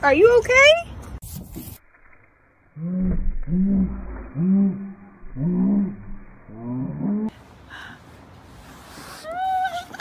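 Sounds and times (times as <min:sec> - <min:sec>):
low rising and falling vocal calls: 0:02.8 - 0:07.3.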